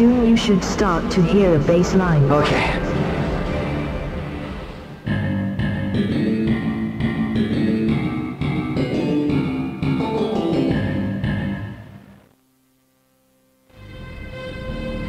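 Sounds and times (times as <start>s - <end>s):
plucked bass and guitar music: 5.1s - 12.2s.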